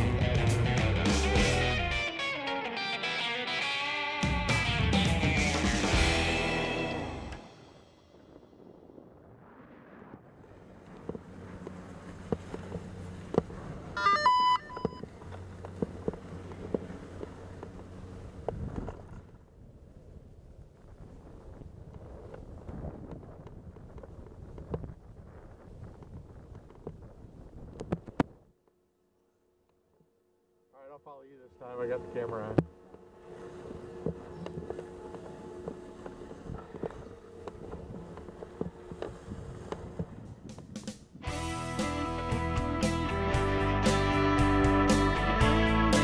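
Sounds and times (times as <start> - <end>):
short beep-like tone: 14.0 - 15.0
low steady hum: 28.9 - 40.4.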